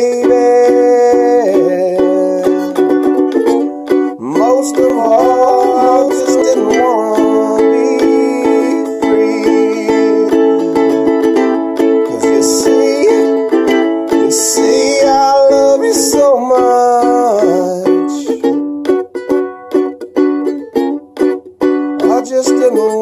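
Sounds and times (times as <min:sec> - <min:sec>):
ukulele strumming chords: 0:00.0 - 0:23.0.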